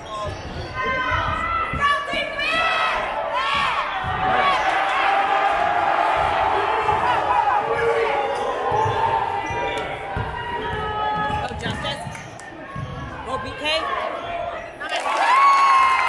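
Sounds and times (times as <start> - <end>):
sneakers squeaking: 0.0 - 2.4, 6.2 - 14.8
crowd talking and calling out: 0.0 - 15.4.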